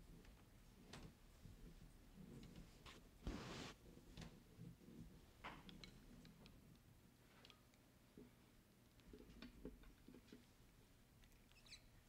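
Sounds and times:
faint high squeak: 11.5 - 12.0.

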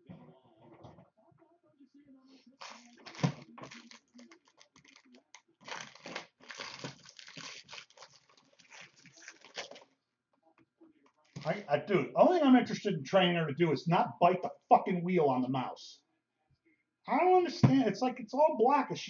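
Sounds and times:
wrappers tearing and crinkling: 2.6 - 9.9.

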